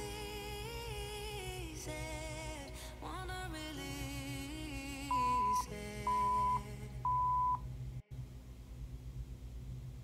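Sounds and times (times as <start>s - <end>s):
quiet background music: 0.0s - 8.2s
countdown timer beeps: 5.1s - 7.6s.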